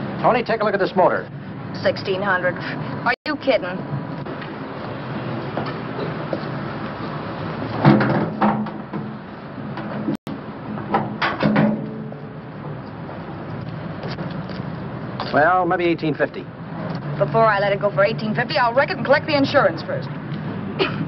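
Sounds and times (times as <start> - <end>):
car hood metal clunks and rattles: 7.8 - 10.2, 10.8 - 12.0.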